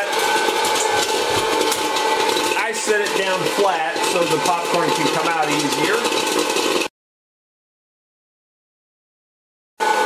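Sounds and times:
fan motor whine: 0.0s - 6.9s.

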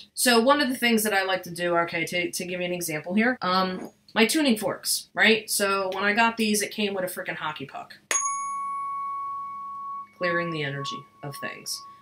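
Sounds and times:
tuning fork struck and ringing: 8.1s - 12.0s.

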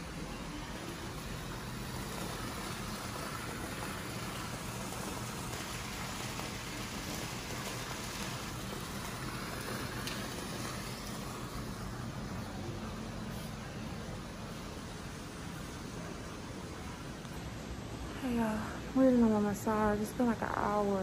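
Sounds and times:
fountain water splashing into pool: 0.8s - 17.2s.

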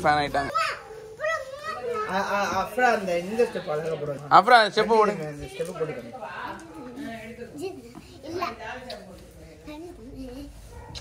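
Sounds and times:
children calling out and chattering: 0.0s - 11.0s.

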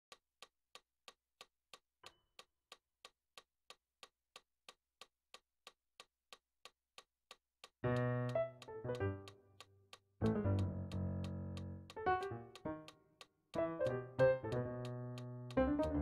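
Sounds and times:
digital piano chord: 7.8s - 9.3s, 15.6s - 16.0s
metronome ticking: 7.8s - 13.0s, 13.6s - 16.0s.

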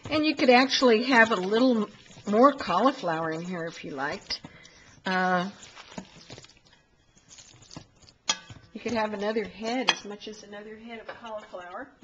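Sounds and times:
spoon stirring mash in bowl: 0.0s - 12.0s
spoon knocking metal bowl: 8.3s - 9.0s, 9.8s - 10.2s.

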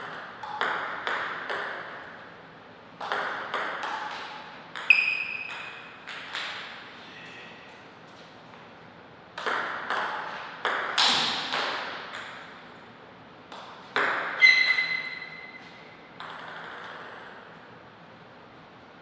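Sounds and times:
sharp ringing tone: 4.8s - 6.0s, 14.4s - 15.7s.

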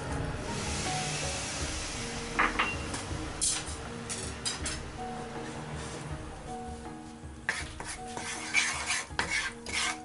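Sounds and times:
wooden spatula scraping frying pan: 7.5s - 10.0s.

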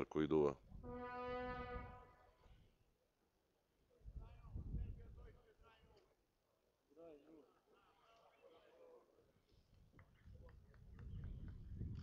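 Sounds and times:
wind rumble on microphone: 4.0s - 5.4s, 9.8s - 12.0s.

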